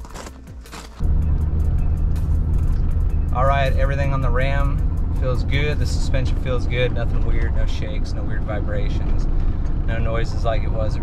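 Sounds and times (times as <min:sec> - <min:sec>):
background music: 0:00.0 - 0:07.7
engine and road noise rumble: 0:00.0 - 0:11.0.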